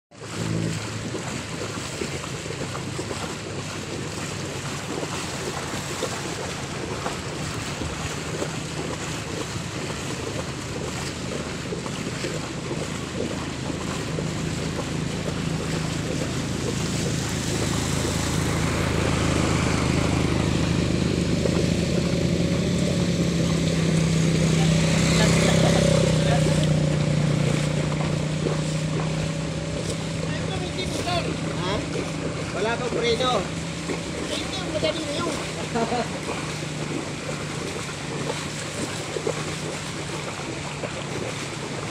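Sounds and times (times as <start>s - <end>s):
floodwater rushing: 0.1s - 41.9s
small engine running: 0.1s - 41.9s
voices: 22.1s - 36.8s.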